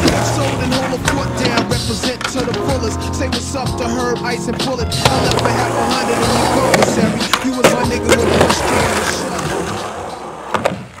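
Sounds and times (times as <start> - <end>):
skateboard clack: 0.0 - 2.7, 5.0 - 11.0
skateboard wheels rolling on concrete: 0.0 - 11.0.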